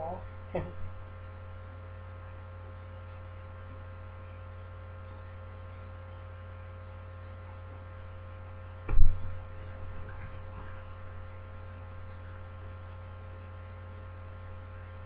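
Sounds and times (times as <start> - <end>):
electrical mains hum: 0.0 - 15.0
faint high whine: 0.0 - 15.0
loud thump: 8.9 - 9.4.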